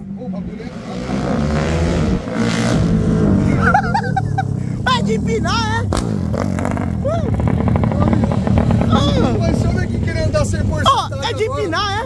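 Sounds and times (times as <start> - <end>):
motorcycle engine running: 0.0 - 12.0.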